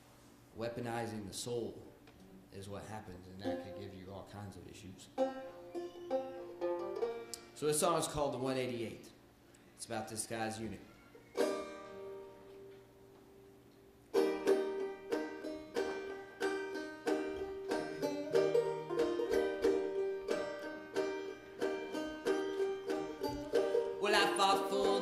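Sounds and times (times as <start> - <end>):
banjo playing: 3.4 - 4.0, 5.1 - 7.6, 11.4 - 12.7, 14.1 - 25.0.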